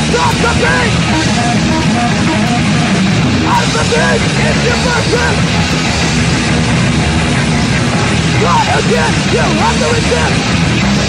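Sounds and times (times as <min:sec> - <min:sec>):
distorted guitar punk music: 0:00.0 - 0:11.0.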